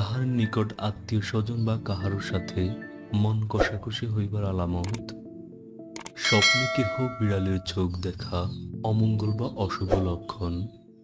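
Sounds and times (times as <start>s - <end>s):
click: 4.8s - 5.0s, 6.0s - 6.2s
bell ding: 6.2s - 7.8s.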